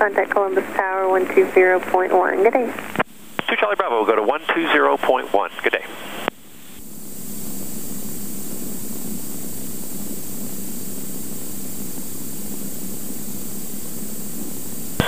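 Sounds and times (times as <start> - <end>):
radio audio: 0.0 - 6.8
propeller plane engine in cockpit: 6.2 - 15.0.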